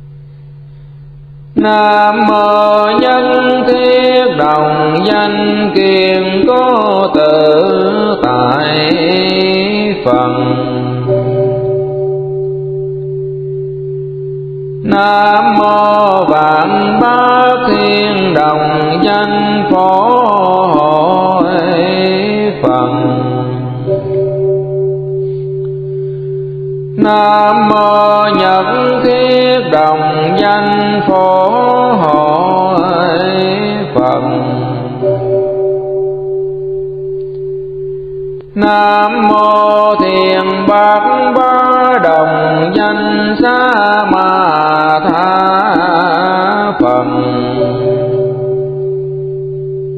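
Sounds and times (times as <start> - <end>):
low musical drone with ringing overtone: 0.0 - 49.9
bowl bell ringing: 10.1 - 17.3, 22.7 - 29.4, 34.0 - 39.4, 47.1 - 49.9.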